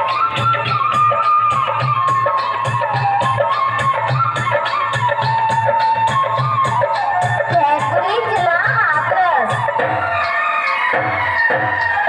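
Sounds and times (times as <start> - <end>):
music over loudspeakers: 0.0 - 12.0.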